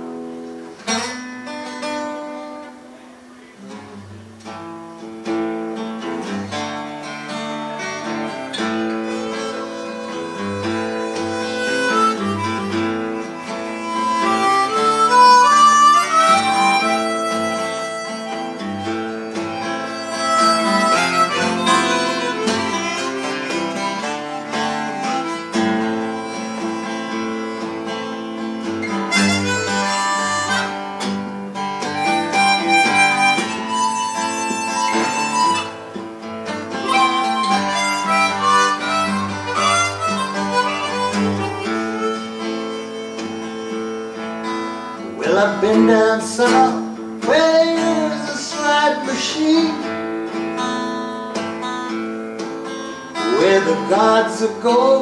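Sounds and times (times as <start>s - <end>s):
guitar chords: 0.0s - 55.0s
harmonica bending notes: 6.2s - 52.0s, 52.6s - 55.0s.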